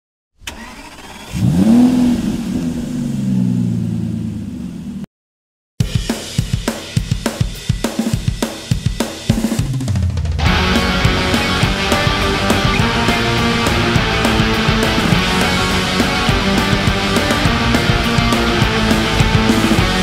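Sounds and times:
car engine starting and revving: 0.4 - 5.1, 10.3 - 20.0
rock drum beat: 5.8 - 20.0.

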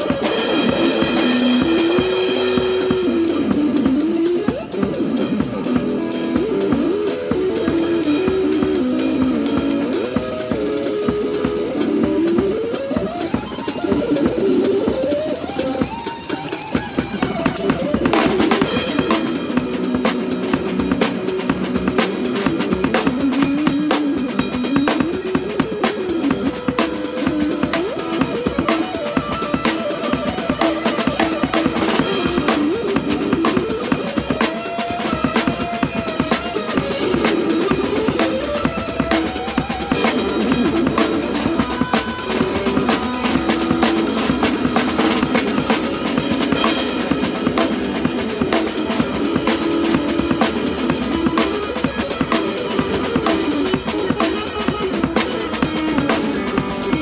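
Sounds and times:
electric guitar lead with bends: 0.0 - 57.0
snare drum and cymbals: 0.0 - 57.0
tambourine shaking: 7.2 - 17.9.

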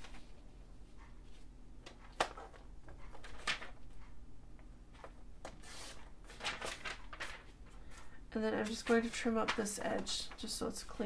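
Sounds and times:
paper rustling: 1.3 - 3.8, 4.9 - 11.0.

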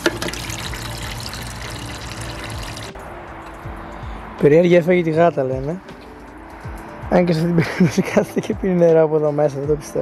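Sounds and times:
water splashing into tank: 0.0 - 3.0.

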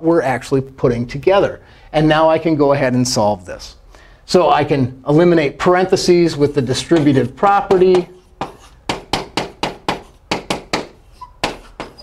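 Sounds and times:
chalk tapping on chalkboard: 6.8 - 12.0.

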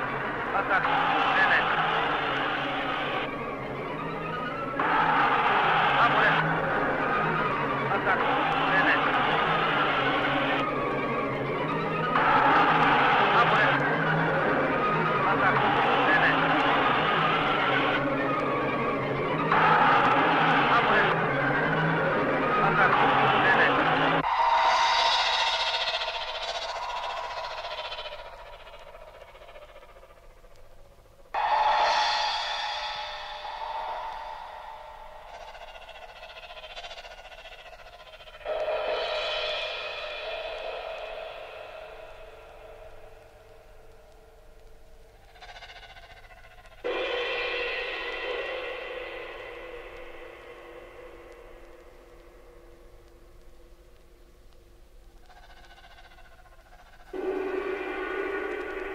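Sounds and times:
bright ringing struck sounds: 24.2 - 29.4, 31.3 - 37.2, 37.8 - 45.3, 46.8 - 54.4.

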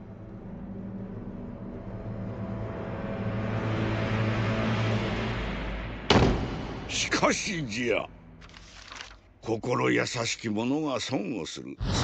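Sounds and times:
low sustained music drone: 0.0 - 6.1.

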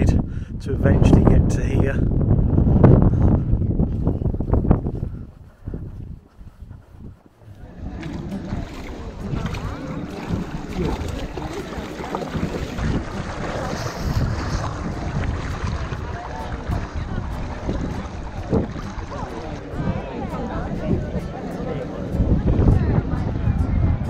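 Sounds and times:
wind buffeting microphone: 0.0 - 24.0
water sloshing: 5.3 - 23.1
faint voices: 7.3 - 24.0.

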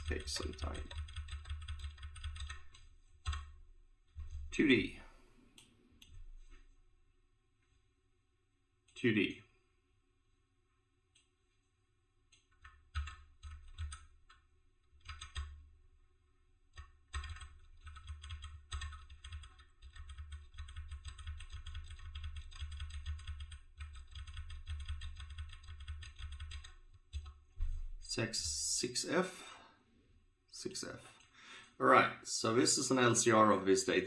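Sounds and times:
typing on computer keyboard: 0.0 - 4.5, 12.3 - 15.6, 16.7 - 27.4.

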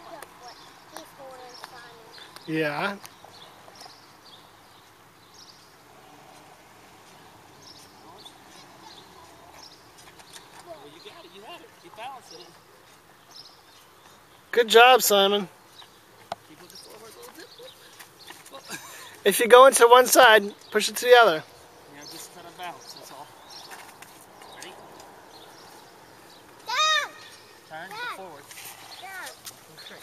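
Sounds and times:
faint outdoor background noise: 0.0 - 30.0.

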